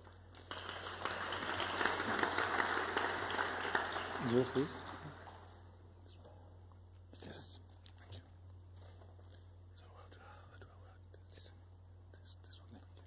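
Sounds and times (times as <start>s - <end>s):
steady low hum: 0.0s - 13.0s.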